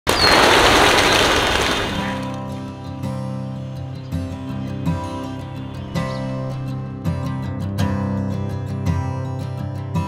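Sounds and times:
pigeon wingbeats clattering: 0:00.1 - 0:02.4.

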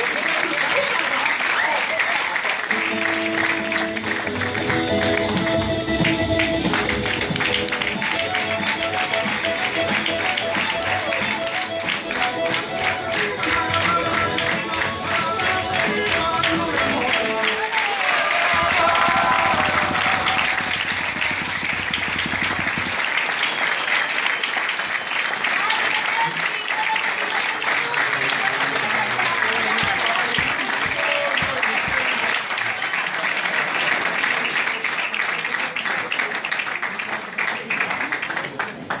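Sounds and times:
audience applauding: 0:00.0 - 0:39.0
voices among clapping: 0:00.0 - 0:39.0
music: 0:02.7 - 0:23.0.

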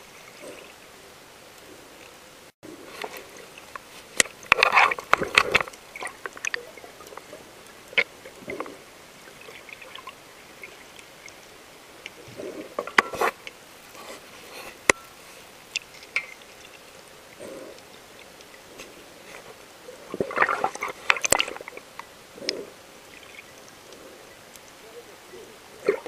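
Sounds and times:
steady underwater hiss: 0:00.0 - 0:26.0
bursts of water movement: 0:02.7 - 0:26.0.

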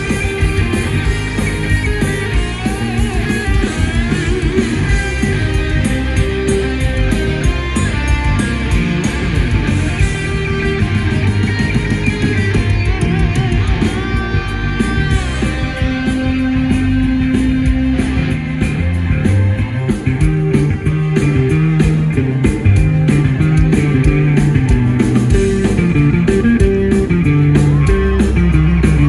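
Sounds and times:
bass guitar: 0:00.0 - 0:29.0
driving drum beat: 0:00.0 - 0:29.0
electric guitars: 0:00.0 - 0:29.0
gliding lead melody: 0:00.0 - 0:29.0.

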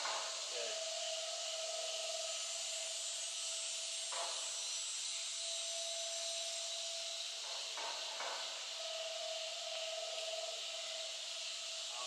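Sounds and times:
insects droning: 0:00.0 - 0:12.0.

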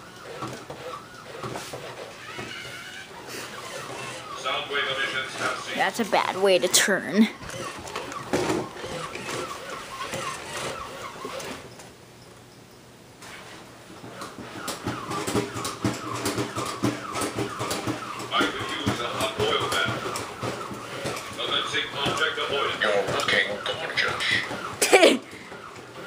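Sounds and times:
toy robot walking clatter: 0:00.2 - 0:11.8, 0:14.1 - 0:24.8.

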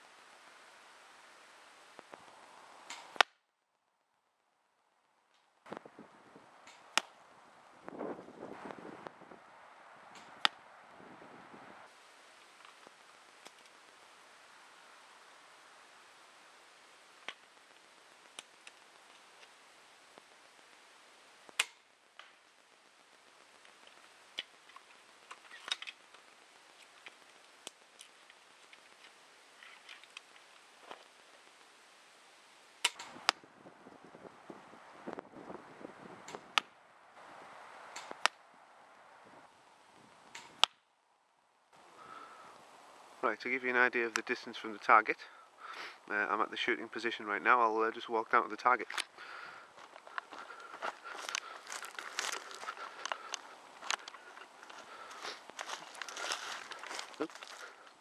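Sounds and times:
crossbow string snapping: 0:02.9 - 0:03.4, 0:06.6 - 0:07.2, 0:10.1 - 0:10.6, 0:17.2 - 0:17.5, 0:21.5 - 0:22.4, 0:32.8 - 0:33.4, 0:36.3 - 0:36.8, 0:37.9 - 0:38.4, 0:40.3 - 0:40.8
handling rustling: 0:48.6 - 0:58.0.

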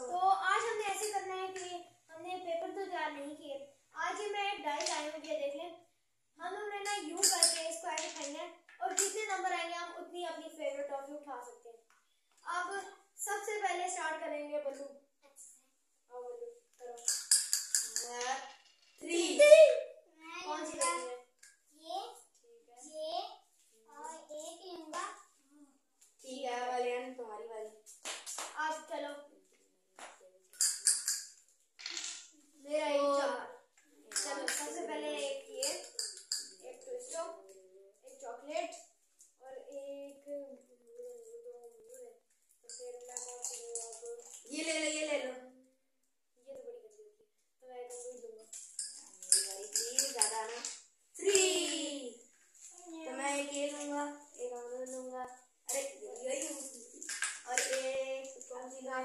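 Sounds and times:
child talking: 0:00.0 - 0:17.2, 0:17.9 - 0:27.8, 0:28.6 - 0:30.5, 0:32.4 - 0:45.8, 0:46.4 - 0:59.0
sharp claps: 0:27.9 - 0:28.8.

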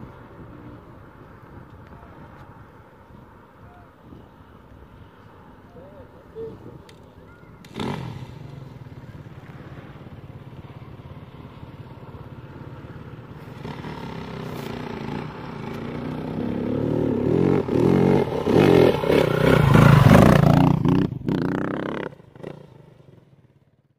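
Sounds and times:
dirt bike engine revving: 0:07.6 - 0:09.1, 0:13.5 - 0:22.6.

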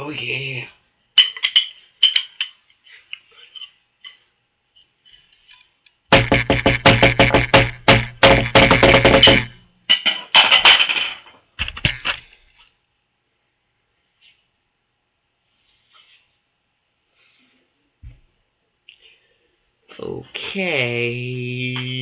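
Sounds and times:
drum strikes: 0:06.1 - 0:09.6.

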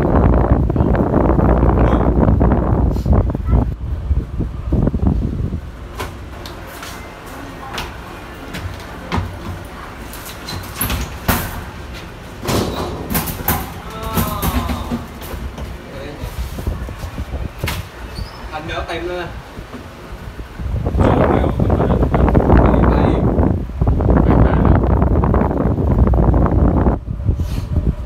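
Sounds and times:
elevator doors sliding open: 0:00.0 - 0:28.0
elevator low rumble: 0:00.0 - 0:28.0
background voices: 0:11.8 - 0:17.4.

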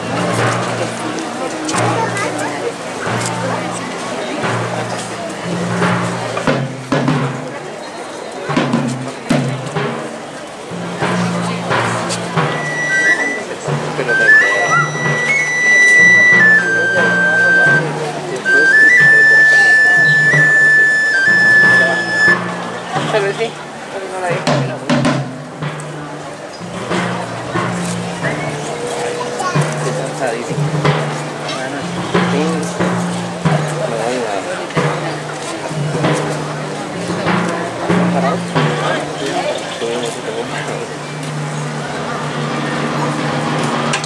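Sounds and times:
murmur of voices: 0:00.0 - 0:44.0
brass band funeral march: 0:10.7 - 0:23.4
high held melody notes: 0:10.7 - 0:23.4.

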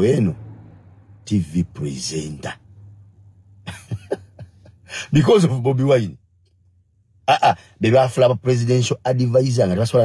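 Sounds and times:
man making throat sounds: 0:07.3 - 0:07.8.

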